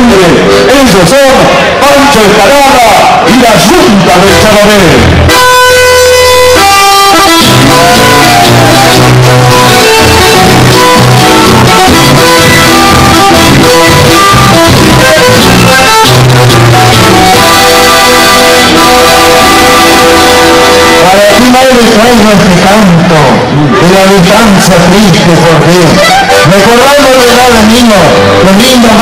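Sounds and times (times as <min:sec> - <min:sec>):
guitar: 0:00.0 - 0:29.0
accordions playing sustained chords: 0:01.4 - 0:29.0.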